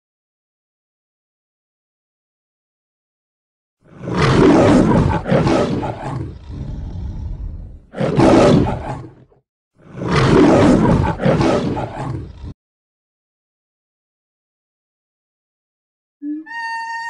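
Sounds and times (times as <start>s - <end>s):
lion roaring: 3.9s - 12.6s.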